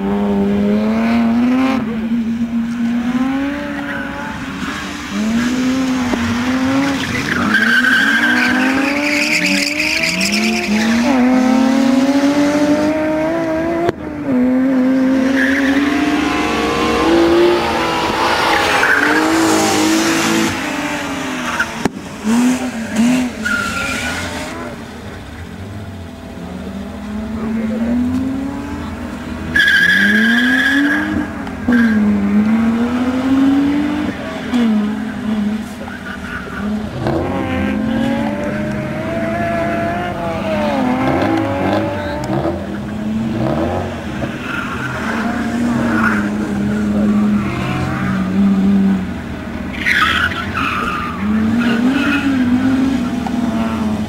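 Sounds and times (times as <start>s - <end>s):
rally car engine revving: 0.0s - 54.0s
tyres squealing: 3.8s - 11.2s, 22.4s - 24.8s, 27.9s - 32.1s.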